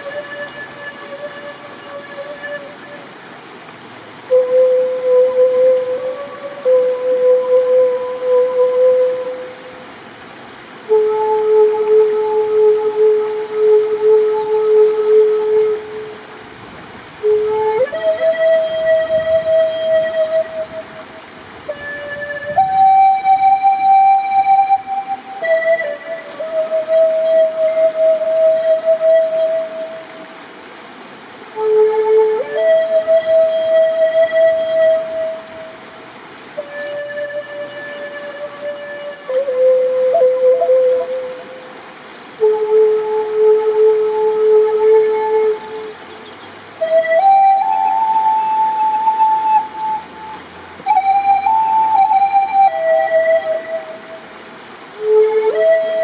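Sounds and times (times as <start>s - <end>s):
wooden flute melody: 0.0s - 56.0s.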